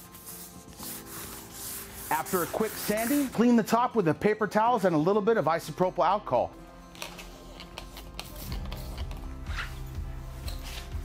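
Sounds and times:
paper towel wiping tabletop: 0.0 - 3.4
background music: 0.0 - 11.0.

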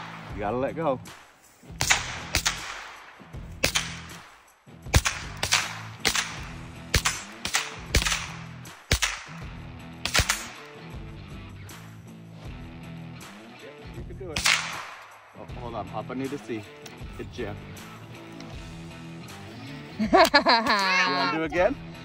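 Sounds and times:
rifle shots with echo: 1.8 - 10.8, 14.4 - 15.4.

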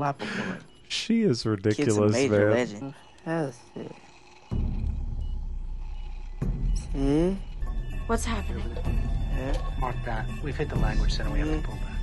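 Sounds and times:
low rumbling drone music: 3.6 - 12.0.

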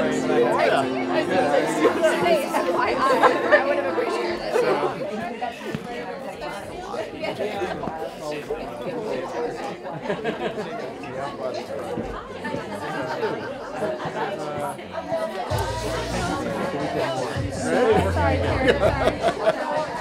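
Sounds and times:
chatter of many people: 0.0 - 20.0.

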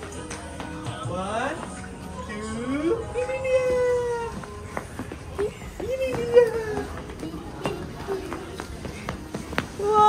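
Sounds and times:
child running: 3.5 - 10.0
footsteps on stone steps: 3.6 - 10.0.

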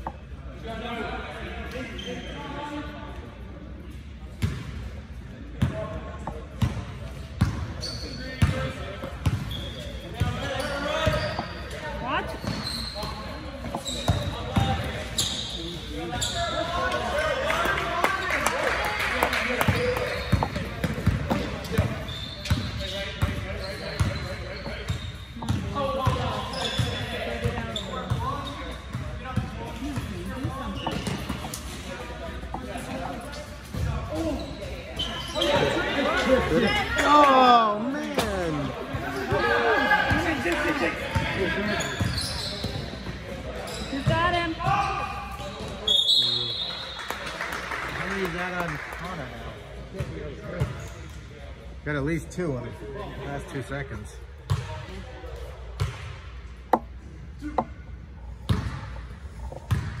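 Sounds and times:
sneaker squeaks on court: 5.6 - 16.7, 19.6 - 31.8, 33.4 - 37.1, 41.1 - 47.0, 58.5 - 60.0
basketball bouncing on gym floor: 8.4 - 9.5, 19.6 - 23.4, 24.9 - 28.3, 55.8 - 56.1, 58.5 - 58.9, 59.6 - 60.0.

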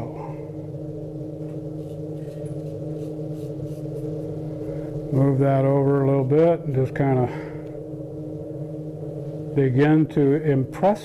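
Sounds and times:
low hum of held tones: 0.0 - 11.0.

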